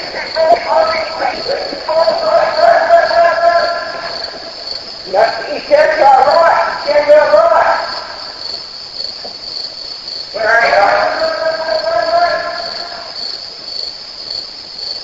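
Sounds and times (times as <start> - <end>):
drunken wavering voice: 0.0 - 4.5, 10.4 - 13.2
crickets chirping: 0.0 - 15.0.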